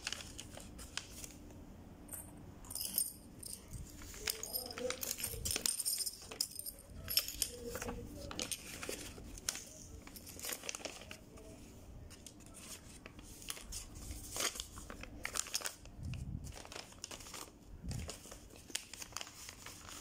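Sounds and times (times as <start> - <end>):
paper bags crinkling: 0.0 - 1.4, 3.6 - 20.0.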